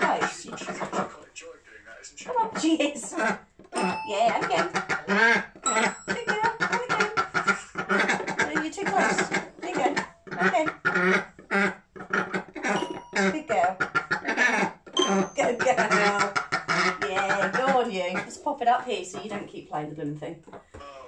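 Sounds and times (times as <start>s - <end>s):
person talking: 3.8s - 4.7s, 13.1s - 13.8s, 15.0s - 16.3s, 17.0s - 20.3s
toy piano chiming notes: 3.8s - 4.8s, 5.6s - 6.4s, 12.7s - 13.7s, 15.0s - 16.0s.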